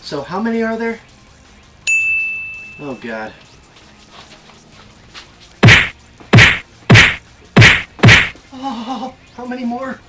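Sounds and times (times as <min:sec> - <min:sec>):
loud thuds against wooden wall: 0:05.6 - 0:08.4.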